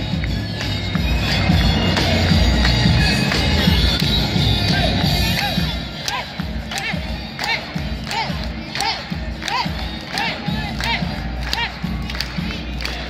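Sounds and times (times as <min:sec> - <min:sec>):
sharp clap-like hits: 0:00.1 - 0:13.0
crowd shouting in rhythm: 0:04.6 - 0:13.0.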